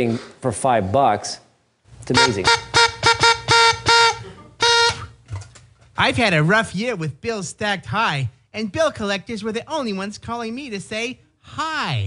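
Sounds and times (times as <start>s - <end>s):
horn tooting through speakers: 2.1s - 5.2s.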